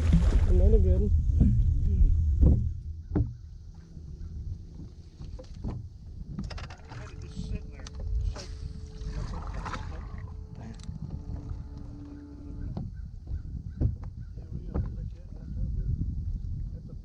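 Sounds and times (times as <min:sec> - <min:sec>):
steady low hum: 0:00.0 - 0:17.0
water noise: 0:00.0 - 0:17.0
wind: 0:00.0 - 0:17.0
knocks: 0:02.4 - 0:03.5, 0:12.6 - 0:14.1.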